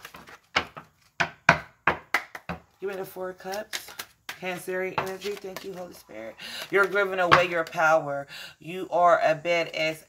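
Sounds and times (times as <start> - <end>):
items tapping on a tabletop: 0.6 - 2.7.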